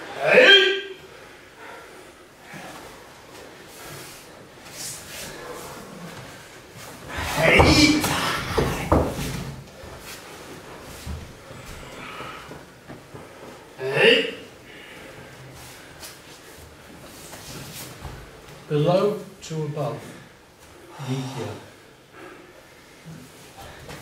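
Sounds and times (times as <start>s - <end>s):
person grunting: 7.1s - 9.0s.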